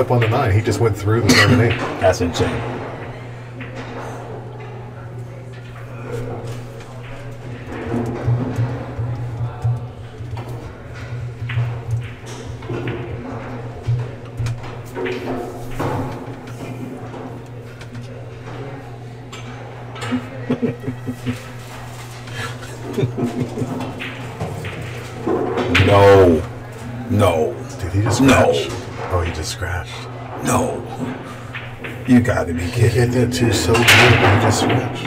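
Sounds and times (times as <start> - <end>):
indistinct background talk: 0.0 - 35.0.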